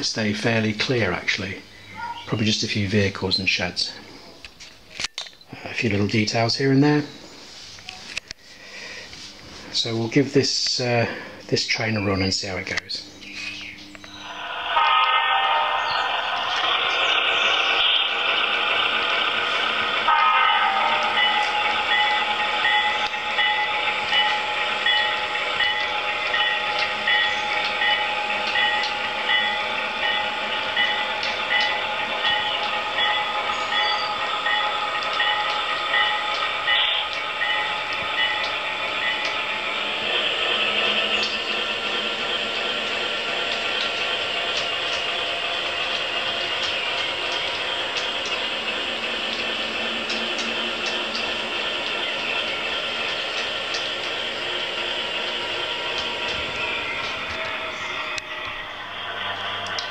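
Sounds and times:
model train running on track: 0.0s - 4.1s, 14.0s - 59.9s.

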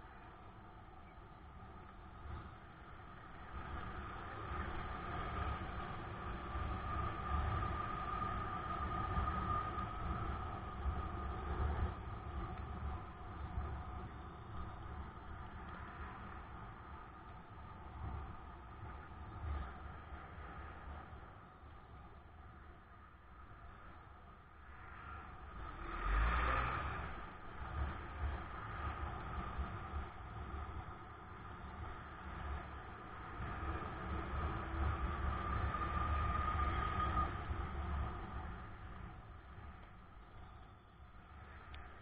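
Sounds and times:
steady whine: 0.0s - 42.0s
gusty low rumble: 2.0s - 42.0s
road traffic engines running: 25.2s - 42.0s.

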